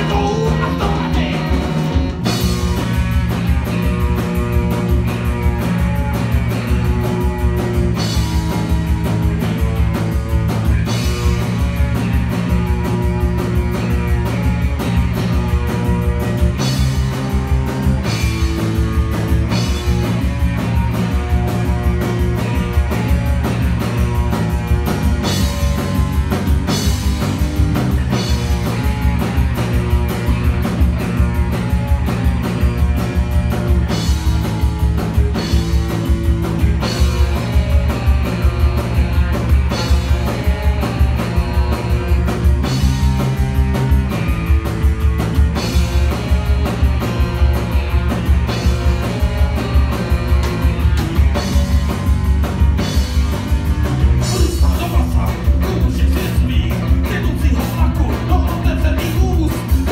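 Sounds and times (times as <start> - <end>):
drum kit with cymbals: 0.0 - 59.9
electric bass: 0.0 - 59.9
electric guitar: 0.0 - 59.9.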